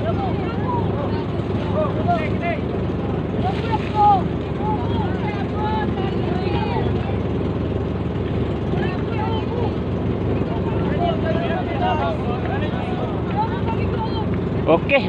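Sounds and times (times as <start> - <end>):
engine running with low hum: 0.0 - 15.0
many people talking and calling: 0.0 - 15.0.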